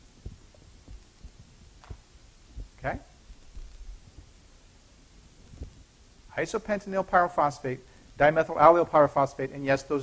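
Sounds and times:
low room hum: 0.0 - 10.0
low thuds of person moving: 0.1 - 4.4, 5.4 - 5.9.

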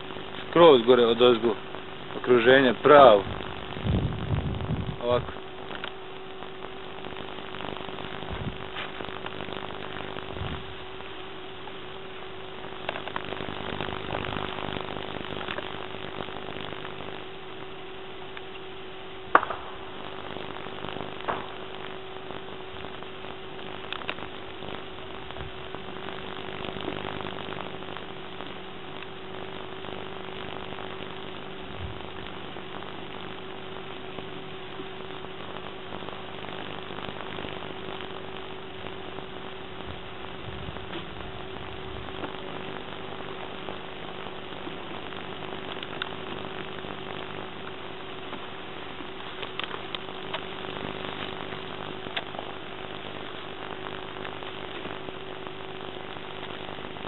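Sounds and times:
camcorder electrical hum and hiss: 0.0 - 57.0
sharp cracks: 4.9 - 57.0.

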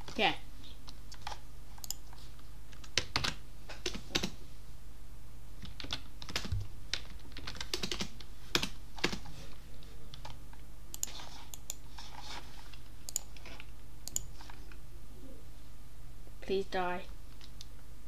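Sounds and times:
steady low hum: 0.0 - 18.0
typing on a keyboard: 2.8 - 4.4, 5.6 - 9.2.

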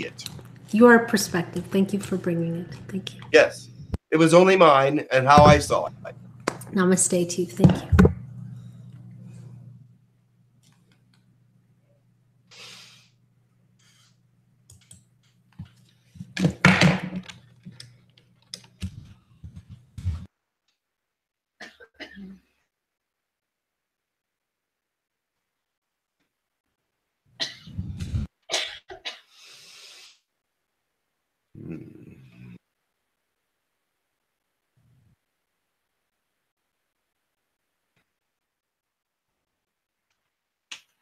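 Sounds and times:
person coughing: 21.6 - 22.4.

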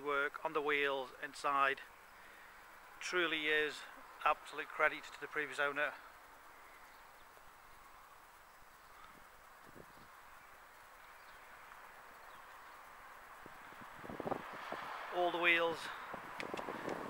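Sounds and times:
faint outdoor background noise: 0.0 - 17.0.

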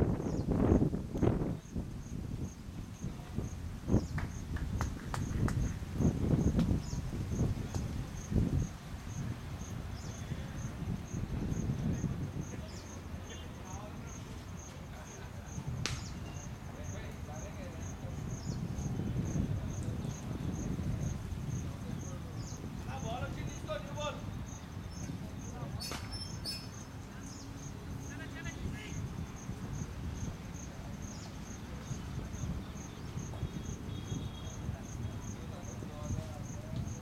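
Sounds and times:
insect chirping: 0.0 - 37.0.

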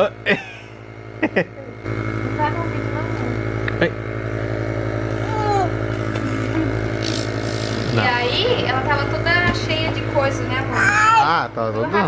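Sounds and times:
air compressor humming: 0.0 - 12.0.

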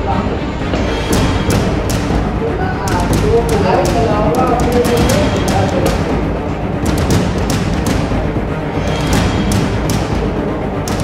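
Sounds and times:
voices: 0.0 - 7.7
background music: 0.0 - 11.0
chess clocks being tapped: 1.0 - 11.0
chess pieces clacking on boards: 2.9 - 6.1.

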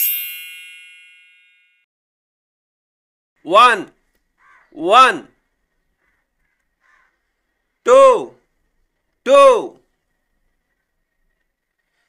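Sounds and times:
bright chime: 0.0 - 1.8.

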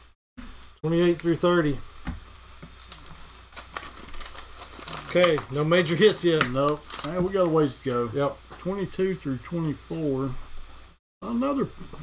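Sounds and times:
paper packs rustling: 2.2 - 8.1.

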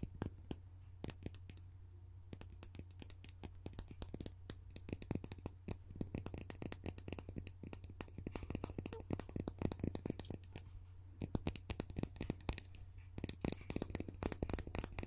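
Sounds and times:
steady low hum: 0.0 - 15.0
fingernails tapping hard object: 2.3 - 15.0.

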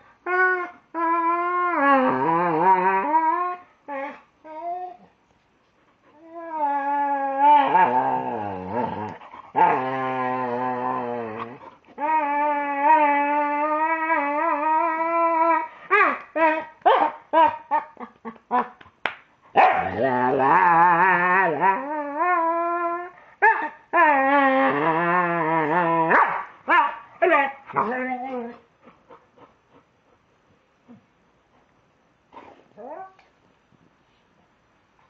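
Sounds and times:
dog howling: 6.2 - 17.7
dog yelping and woofing: 14.5 - 18.8, 26.0 - 28.6.

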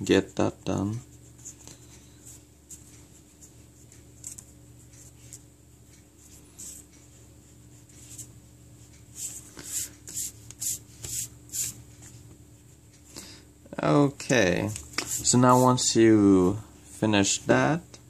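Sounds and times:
pencil rubbing back and forth: 9.1 - 11.8, 15.0 - 15.8
pencil scratching on paper: 9.2 - 11.8, 15.0 - 15.8.

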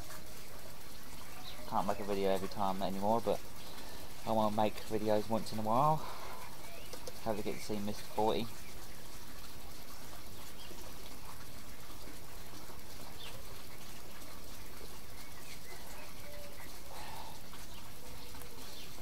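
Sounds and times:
outdoor background hiss: 0.0 - 19.0
faint bird chirps: 6.2 - 7.8, 15.0 - 19.0.

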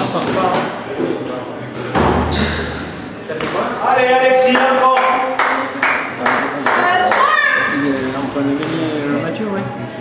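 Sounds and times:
short high squeak: 2.3 - 4.1.

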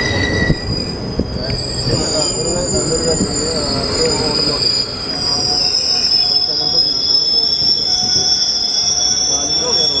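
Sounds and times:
train wheels squealing on rails: 0.0 - 10.0.

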